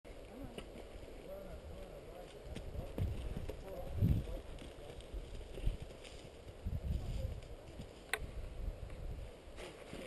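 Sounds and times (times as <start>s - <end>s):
horse hooves on dirt: 0.1s - 8.2s.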